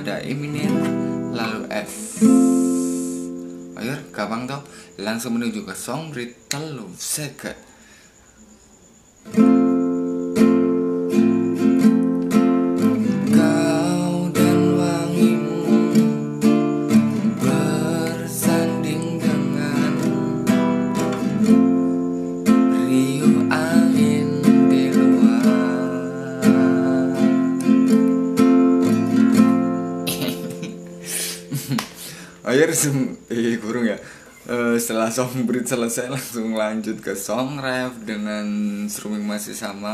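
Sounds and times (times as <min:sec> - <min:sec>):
acoustic guitar strumming: 0:00.0 - 0:07.1, 0:09.2 - 0:34.2.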